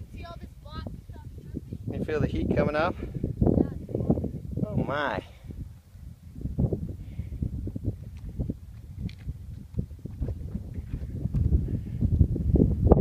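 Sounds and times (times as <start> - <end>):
footsteps crunching on rock: 8.1 - 11.5.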